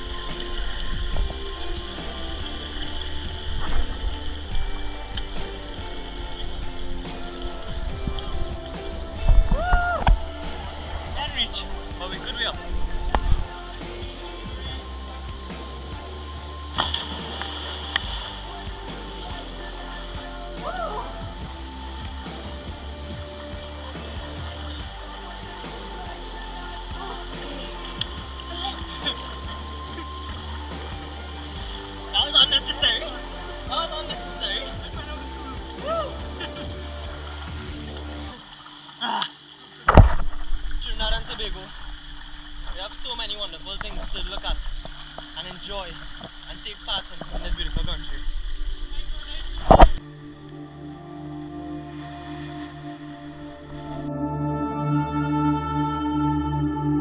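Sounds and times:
churning water: 0:00.0 - 0:50.6
background music: 0:00.0 - 0:57.0.

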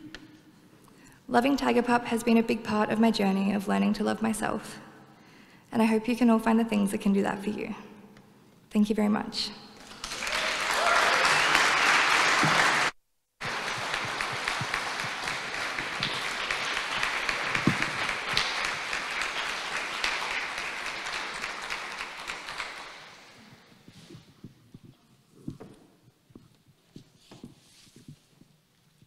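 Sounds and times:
audience applauding: 0:09.8 - 0:23.3.

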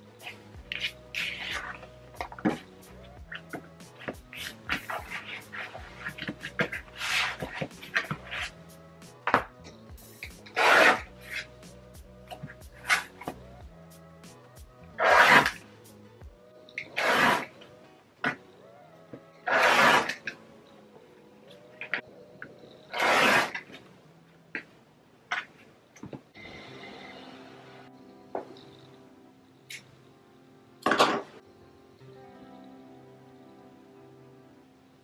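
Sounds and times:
rotary cutter slicing fabric: 0:10.4 - 0:11.5, 0:15.0 - 0:15.6, 0:16.8 - 0:17.6, 0:19.4 - 0:20.4, 0:22.9 - 0:23.7.

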